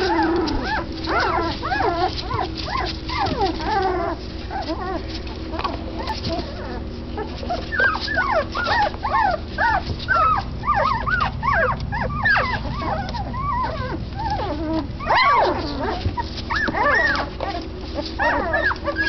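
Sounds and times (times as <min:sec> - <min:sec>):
puppies whimpering and squeaking: 0:00.0 - 0:19.0.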